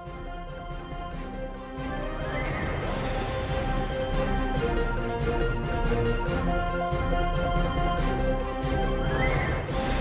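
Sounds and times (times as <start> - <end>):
theme music sustained chords: 0.0 - 10.0.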